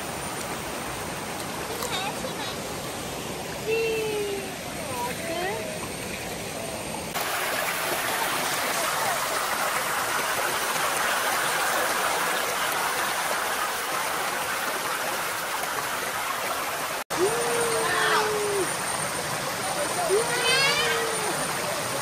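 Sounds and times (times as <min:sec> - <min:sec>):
stream rushing over stones: 0:00.0 - 0:22.0.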